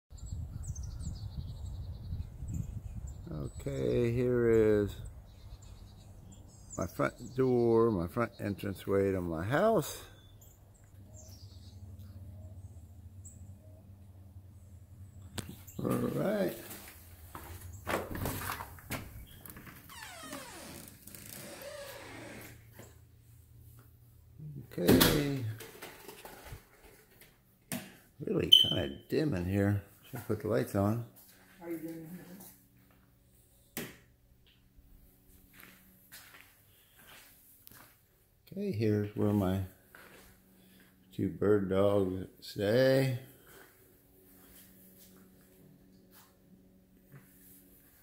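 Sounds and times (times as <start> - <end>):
birds singing: 0.1 - 16.6.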